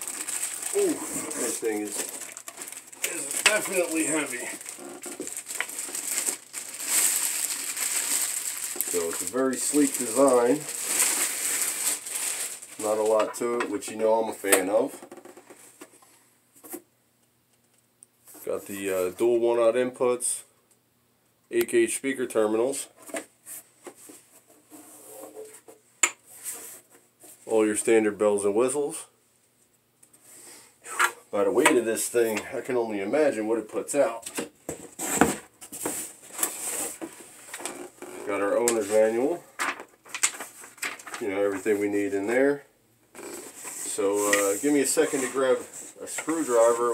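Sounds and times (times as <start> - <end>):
plastic wrap rustling: 0.0 - 15.8, 34.8 - 42.6, 43.2 - 46.9.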